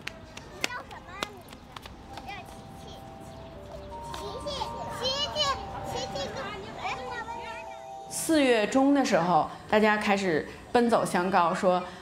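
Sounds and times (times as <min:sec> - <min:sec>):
small children chattering: 0:00.0 - 0:12.0.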